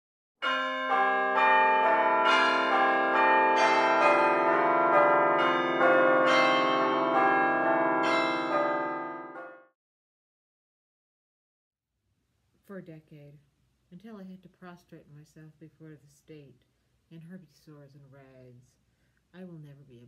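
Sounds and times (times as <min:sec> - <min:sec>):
bells ringing: 0:00.4 - 0:09.6.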